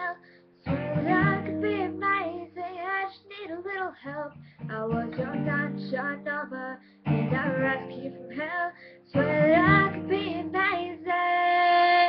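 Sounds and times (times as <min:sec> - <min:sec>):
woman singing: 0:00.0 - 0:12.0
strummed acoustic guitar: 0:00.6 - 0:02.5, 0:04.4 - 0:06.3, 0:07.0 - 0:08.5, 0:09.1 - 0:11.1.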